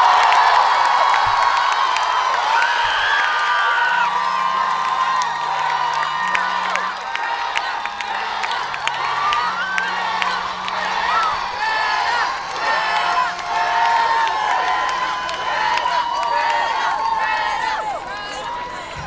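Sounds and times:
crowd cheering and whooping: 0:00.0 - 0:19.0.

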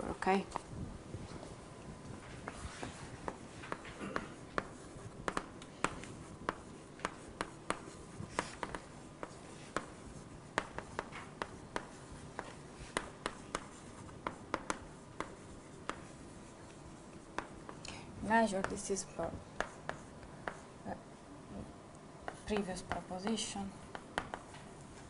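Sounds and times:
chalk tapping and scratching: 0:02.1 - 0:21.0, 0:22.2 - 0:25.0.

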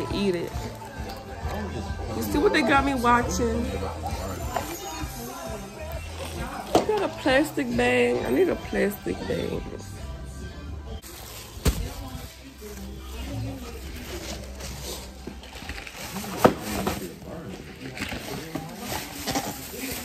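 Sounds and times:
background music: 0:00.0 - 0:20.0
faint voices: 0:00.0 - 0:20.0.

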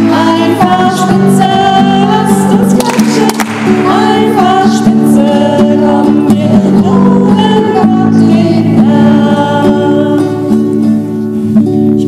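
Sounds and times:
women singing a children's song: 0:00.0 - 0:10.5
strummed acoustic guitar: 0:00.0 - 0:12.0.

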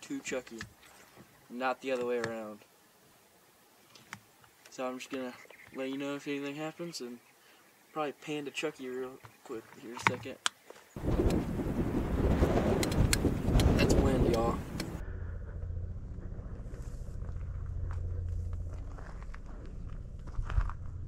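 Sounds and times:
wind buffeting microphone: 0:11.0 - 0:15.0
steady low rumble: 0:11.0 - 0:21.0.

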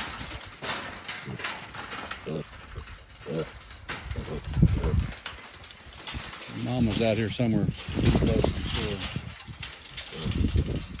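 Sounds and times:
hog grunting: 0:02.2 - 0:03.6.

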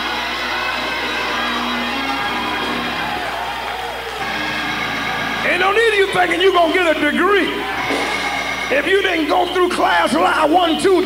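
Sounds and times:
congregation calling out: 0:00.0 - 0:11.0
organ sustained chords: 0:00.0 - 0:11.0.

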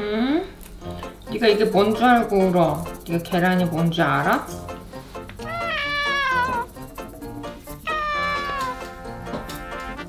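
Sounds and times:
cat meowing: 0:05.4 - 0:06.7, 0:07.8 - 0:09.0.

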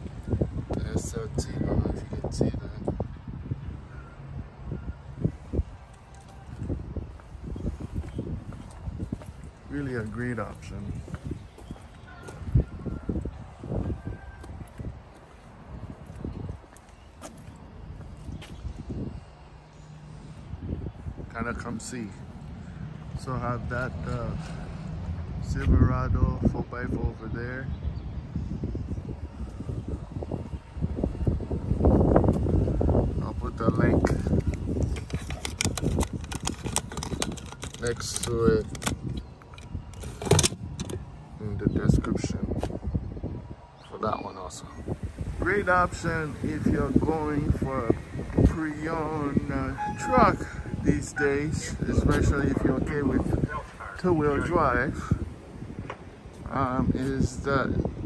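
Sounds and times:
footsteps on asphalt: 0:05.3 - 0:21.3, 0:23.8 - 0:25.8, 0:42.5 - 0:43.0
plastic box rattling: 0:35.2 - 0:38.9.

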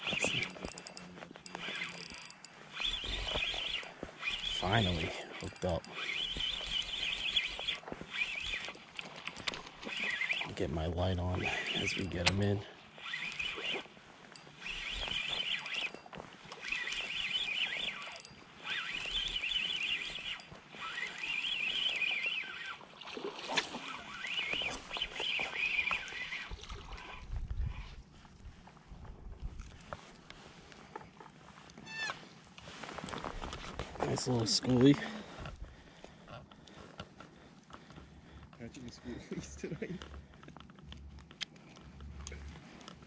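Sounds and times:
fishing reel gear whine: 0:00.0 - 0:43.0.

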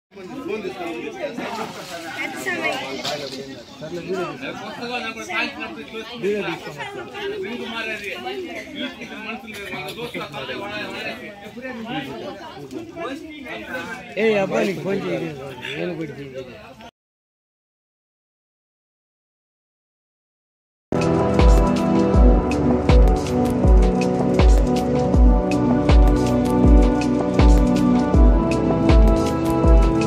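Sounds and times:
people chattering: 0:00.1 - 0:16.9, 0:21.0 - 0:30.0.

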